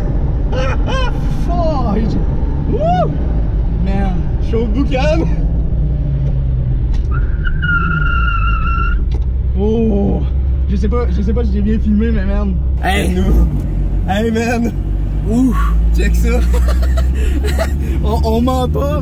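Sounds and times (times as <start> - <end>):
car engine low rumble: 0.0 - 19.0.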